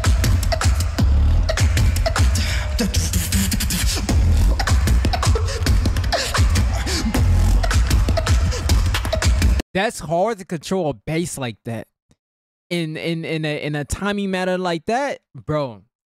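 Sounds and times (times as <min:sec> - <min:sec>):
beatboxed kick and snare hits: 0:00.0 - 0:09.6
beatboxing deep bass line: 0:00.0 - 0:09.6.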